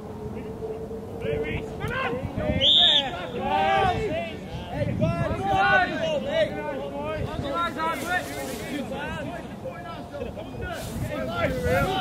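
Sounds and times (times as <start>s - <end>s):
voices shouting and calling: 0.0s - 12.0s.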